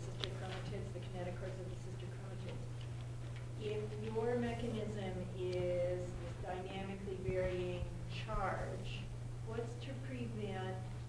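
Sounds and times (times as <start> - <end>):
person speaking: 0.0 - 2.7, 3.6 - 10.9
low electrical hum: 0.0 - 11.0.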